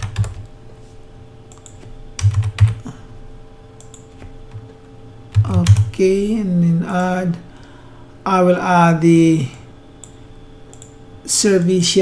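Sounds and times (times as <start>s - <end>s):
computer keyboard typing: 0.0s - 0.5s, 1.5s - 2.9s, 3.8s - 6.0s
faint steady hum: 0.0s - 12.0s.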